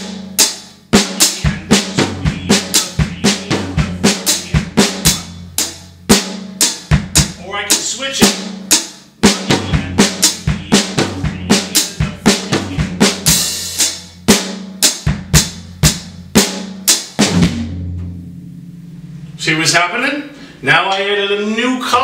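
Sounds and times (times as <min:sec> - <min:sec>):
snare drum: 0:00.0 - 0:18.2
bass drum: 0:00.0 - 0:19.4.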